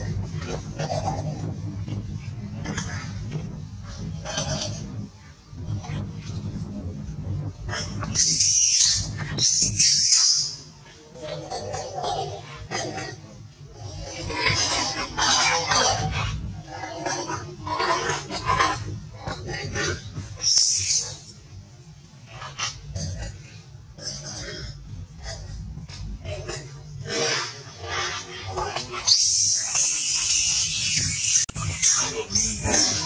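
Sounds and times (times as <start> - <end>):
monkeys calling in harsh cries: 7.9 - 10.7, 20.4 - 21.3, 27.2 - 33.0
monkey screaming: 29.0 - 33.0.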